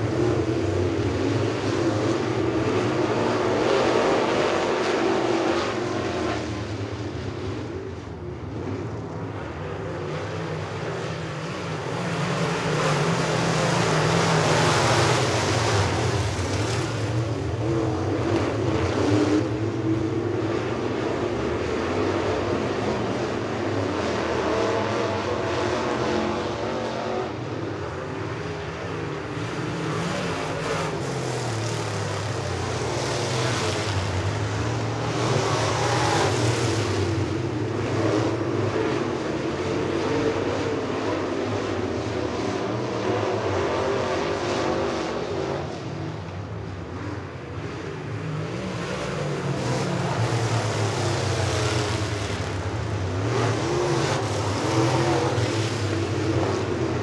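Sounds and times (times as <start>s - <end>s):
race car engines passing: 0.0s - 57.0s.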